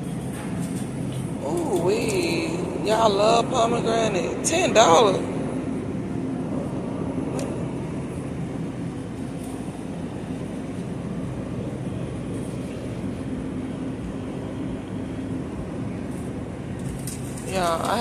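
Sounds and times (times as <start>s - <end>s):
refrigerator and ventilation hum: 0.0s - 18.0s.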